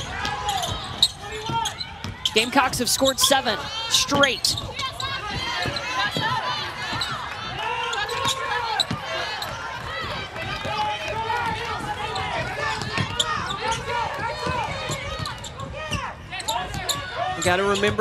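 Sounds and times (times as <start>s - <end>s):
players calling out: 0.0s - 18.0s
sneakers squeaking on hardwood: 0.2s - 7.2s, 7.9s - 9.5s, 11.4s - 18.0s
basketball bouncing: 8.1s - 16.0s.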